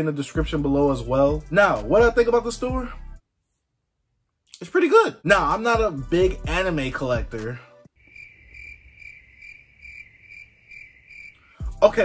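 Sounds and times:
crickets chirping: 0:08.0 - 0:11.6.

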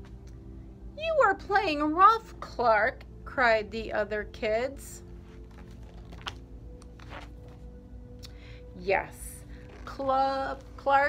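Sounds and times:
page rustling: 0:05.2 - 0:07.7
sharp clicks of book handling: 0:05.4 - 0:07.7.

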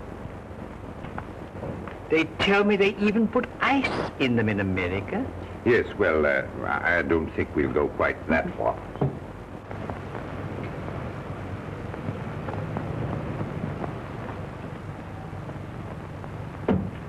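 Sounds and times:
noisy hiss: 0:00.0 - 0:17.0
steady low rumble: 0:00.0 - 0:17.0.

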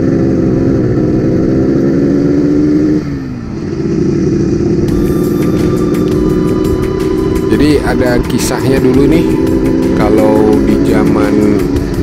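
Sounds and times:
two-stroke motorcycle engine running: 0:00.0 - 0:12.0.

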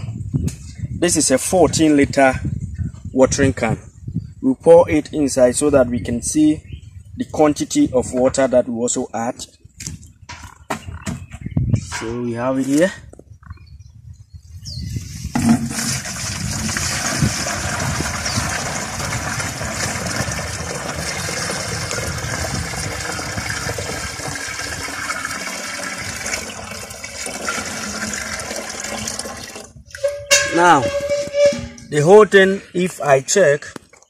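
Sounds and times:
liquid pouring into plastic can: 0:15.6 - 0:29.8.

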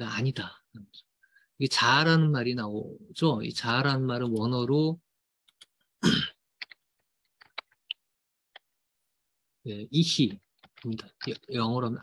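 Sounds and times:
man clearing throat: 0:06.0 - 0:06.4.

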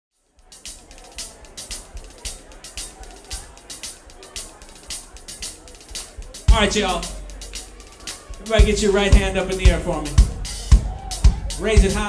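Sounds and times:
drum kit playing groove: 0:00.2 - 0:12.0
low bass line: 0:06.0 - 0:12.0.

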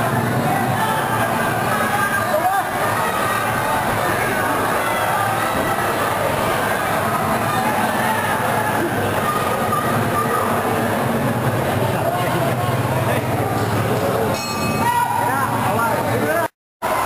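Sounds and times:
crowd talking and shouting: 0:00.0 - 0:17.0.

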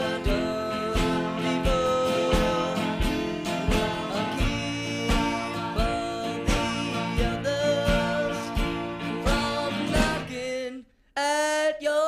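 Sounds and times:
acoustic guitars strumming: 0:00.0 - 0:10.8
man singing long notes: 0:00.0 - 0:12.0.

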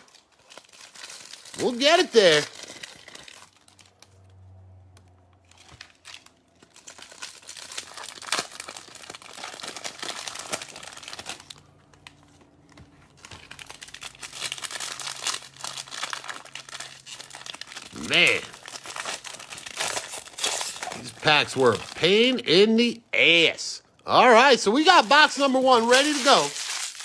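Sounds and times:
foil wrappers crinkling and tearing: 0:00.0 - 0:04.4, 0:05.4 - 0:22.4, 0:24.8 - 0:27.0.

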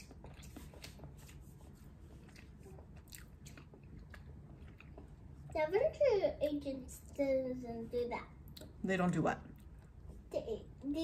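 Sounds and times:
person chewing soft cake: 0:00.0 - 0:05.5.

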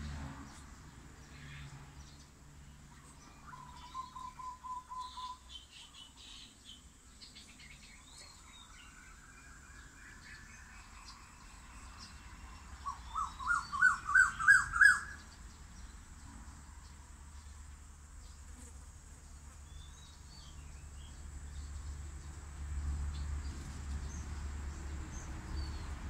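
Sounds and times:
birds calling: 0:02.9 - 0:16.0.

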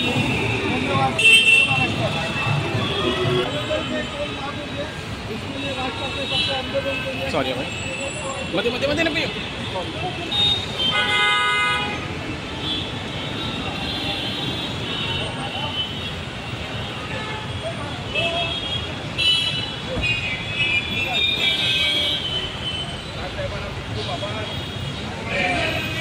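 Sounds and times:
car horns: 0:00.0 - 0:04.5, 0:05.6 - 0:23.0
people's voices: 0:00.0 - 0:10.9, 0:17.3 - 0:26.0
road traffic: 0:00.0 - 0:26.0.

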